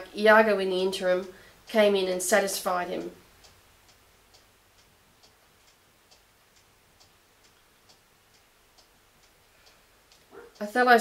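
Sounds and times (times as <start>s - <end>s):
faint regular ticking: 0.0s - 11.0s.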